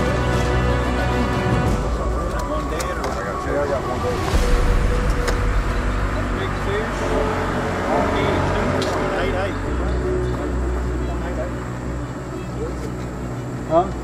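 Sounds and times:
people talking in background: 0:00.0 - 0:14.0
low rumble: 0:01.4 - 0:12.4.

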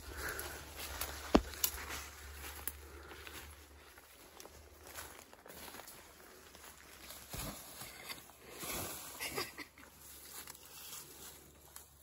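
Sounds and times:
footsteps on forest floor: 0:00.0 - 0:09.2, 0:10.0 - 0:12.0
leaves and undergrowth rustling: 0:00.0 - 0:12.0.

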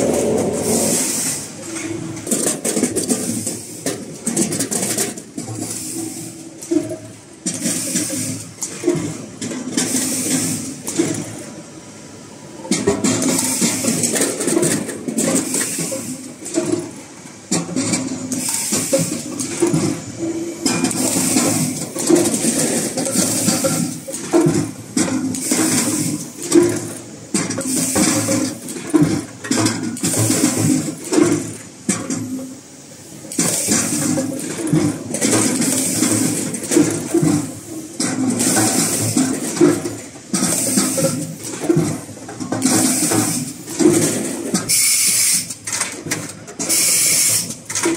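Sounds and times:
potatoes rolling along metal chutes: 0:20.7 - 0:47.9
mechanical clatter: 0:33.3 - 0:47.9.

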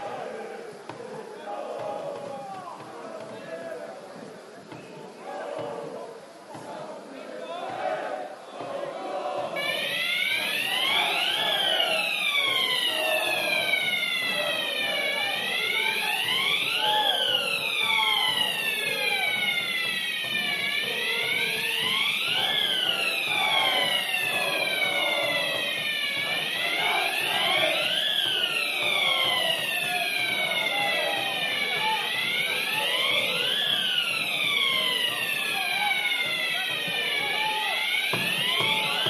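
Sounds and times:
crowd chanting: 0:00.0 - 0:39.0
wailing siren: 0:09.4 - 0:39.0.

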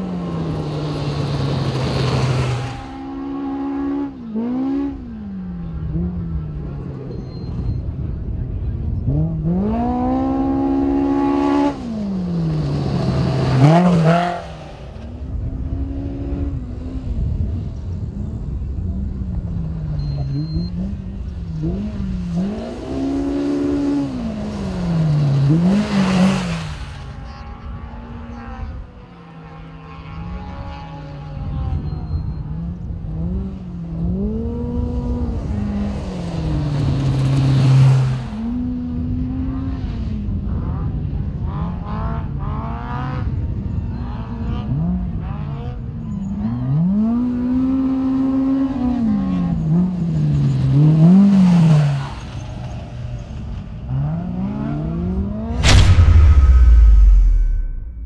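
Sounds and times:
off-road vehicle engines revving past: 0:00.0 - 0:57.7.

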